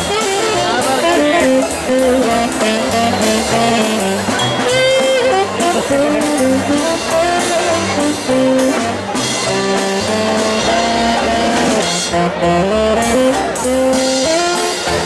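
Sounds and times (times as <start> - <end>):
saxophones playing a tune: 0.0 - 15.0.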